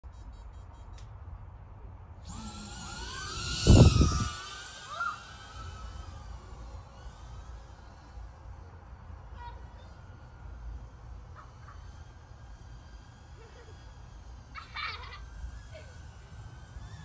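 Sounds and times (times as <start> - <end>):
drone motors whining: 2.1 - 17.0.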